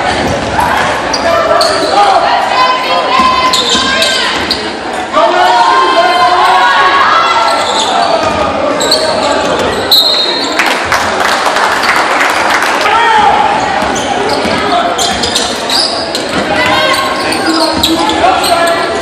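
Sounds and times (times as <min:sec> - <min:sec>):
people shouting: 0:05.1 - 0:08.5.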